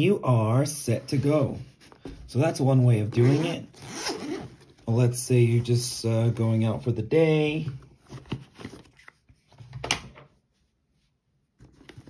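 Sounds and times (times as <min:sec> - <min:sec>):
bag rustling: 0:03.2 - 0:04.9.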